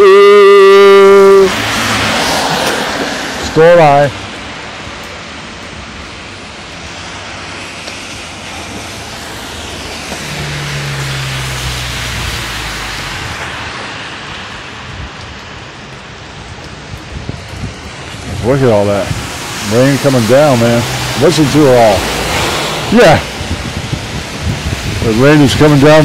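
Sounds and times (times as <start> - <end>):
car engine hum: 0.0 - 26.0
heavy rain on pavement: 0.0 - 26.0
car tyres hissing on wet road: 0.1 - 26.0.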